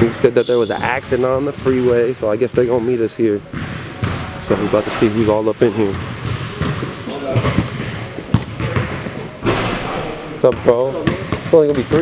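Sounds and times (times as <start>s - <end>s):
basketballs bouncing on hardwood: 3.5s - 9.8s, 10.4s - 12.0s.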